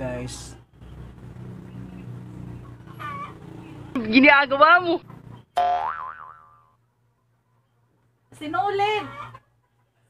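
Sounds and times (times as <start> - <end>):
cartoon boing sound effect: 5.6 - 6.8.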